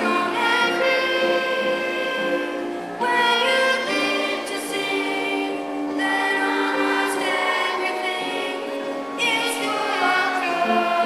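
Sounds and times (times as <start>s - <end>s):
clarinet holding long note: 0.0s - 11.0s
person singing: 0.0s - 11.0s.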